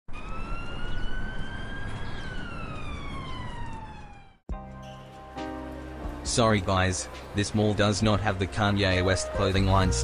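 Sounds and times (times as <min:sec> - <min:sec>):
siren wailing: 0:00.1 - 0:04.4.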